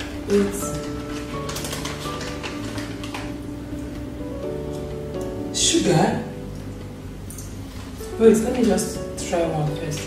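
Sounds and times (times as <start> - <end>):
plastic snack packets rustling: 0.0 - 3.4
background music with held notes: 0.0 - 10.0.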